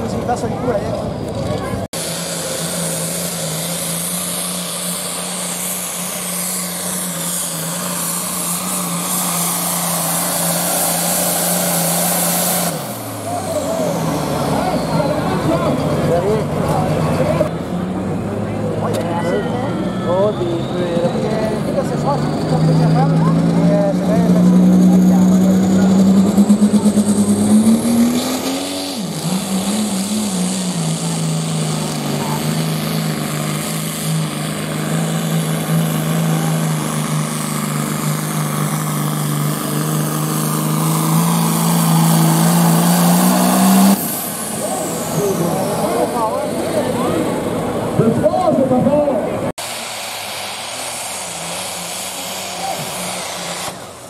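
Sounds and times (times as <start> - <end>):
diesel tractor engine at full throttle: 0.0 - 54.0.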